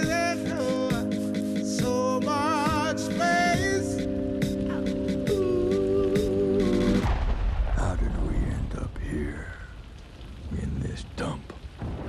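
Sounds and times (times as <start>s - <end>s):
steady low rumble: 5.3s - 12.0s
deep gravelly man speaking: 7.7s - 9.8s, 10.5s - 11.6s.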